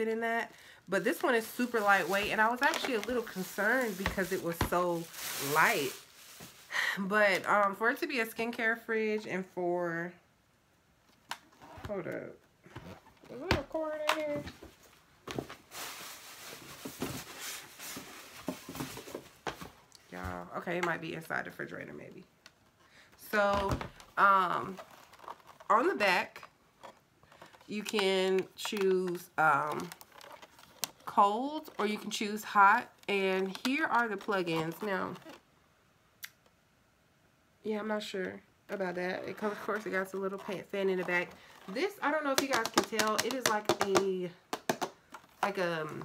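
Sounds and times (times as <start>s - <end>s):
packaging rustling: 1.1s - 6.8s, 12.8s - 19.9s, 23.9s - 25.8s, 33.4s - 35.4s.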